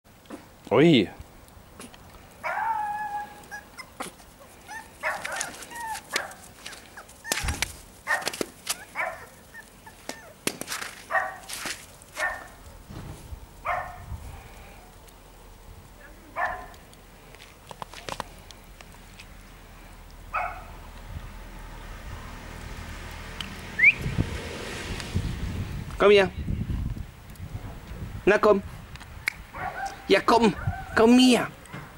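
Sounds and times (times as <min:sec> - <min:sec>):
small dogs barking and whining: 0:01.8 - 0:11.6, 0:12.2 - 0:12.6, 0:29.5 - 0:31.9.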